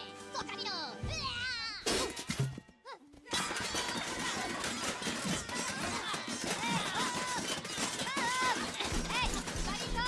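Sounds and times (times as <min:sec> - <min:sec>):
music: 0:00.0 - 0:05.7, 0:08.6 - 0:10.0.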